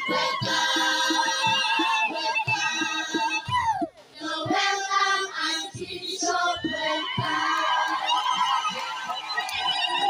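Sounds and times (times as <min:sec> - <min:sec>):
children's choir singing: 0:00.0 - 0:03.6, 0:04.2 - 0:09.2
steady drumbeat: 0:00.0 - 0:10.0.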